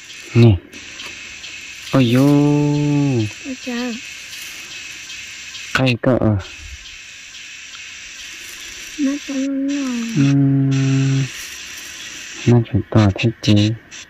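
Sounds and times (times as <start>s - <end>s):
steady high-pitched hiss: 0.0s - 14.0s
woman speaking and humming: 3.4s - 4.0s, 9.0s - 10.8s.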